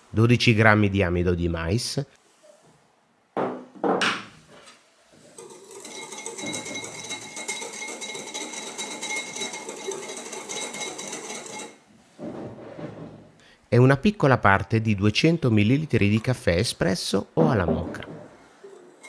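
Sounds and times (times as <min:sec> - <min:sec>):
whisk rattling in glass bowl: 0:05.4 - 0:11.8.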